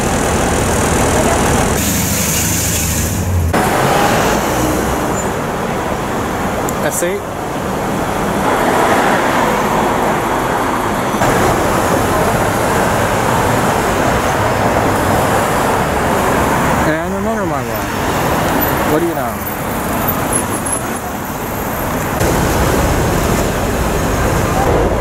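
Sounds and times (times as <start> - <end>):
car engines running: 0.0 - 25.0
tyres rolling: 0.0 - 25.0.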